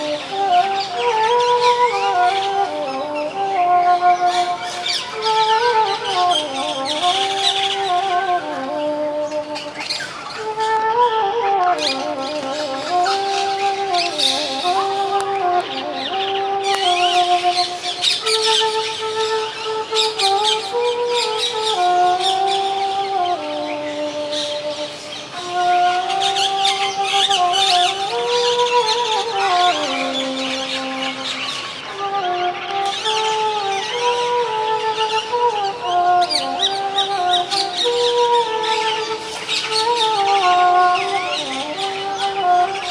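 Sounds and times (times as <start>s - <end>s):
bamboo flute slow melody: 0.0s - 42.9s
birds chirping: 0.0s - 42.9s.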